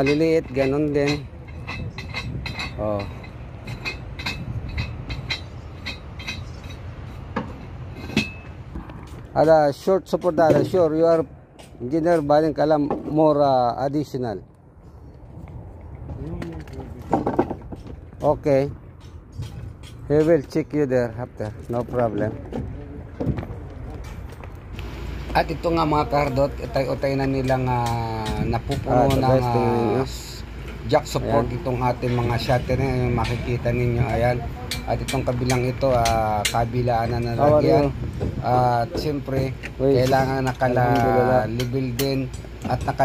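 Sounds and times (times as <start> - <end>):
sharp metallic clinking: 0.0 - 8.7
person speaking: 25.3 - 43.0.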